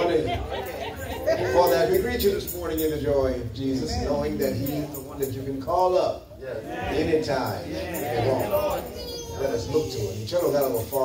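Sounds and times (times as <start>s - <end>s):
man speaking into a microphone: 1.4s - 11.0s.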